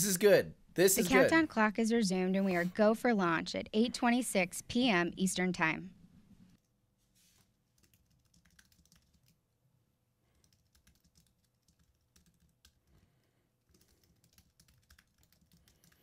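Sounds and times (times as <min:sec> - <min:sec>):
keyboard typing: 0:07.7 - 0:09.4, 0:10.4 - 0:12.9, 0:13.6 - 0:16.0.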